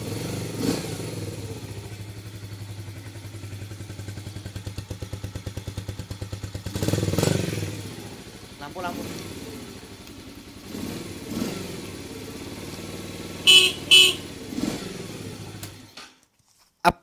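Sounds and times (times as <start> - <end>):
motorcycle engine idling and revving: 0.0 - 16.2.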